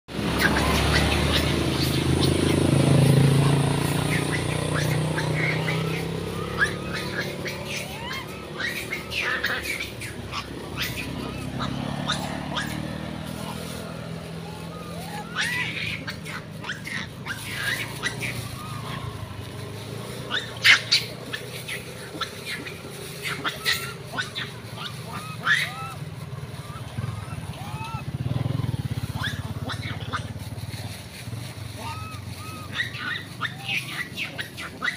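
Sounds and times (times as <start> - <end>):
motor vehicle passing: 0.1 - 34.9
high chirps and squeaks: 0.2 - 28.1, 29.1 - 30.4, 31.7 - 34.9.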